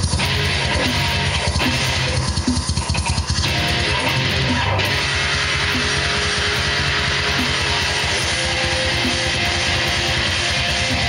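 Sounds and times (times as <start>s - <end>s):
distorted electric guitar riff: 0.0s - 11.0s.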